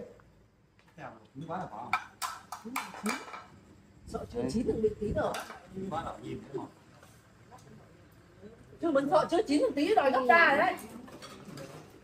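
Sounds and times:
voices at a meal: 0:00.0 - 0:12.0.

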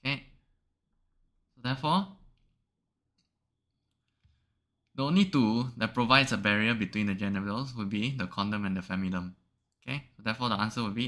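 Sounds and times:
person speaking: 0:01.5 - 0:02.4, 0:04.9 - 0:11.0.

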